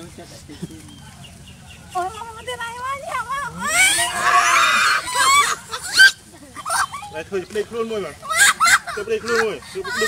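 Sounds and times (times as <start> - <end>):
young woman squealing and shrieking: 3.5 - 7.0.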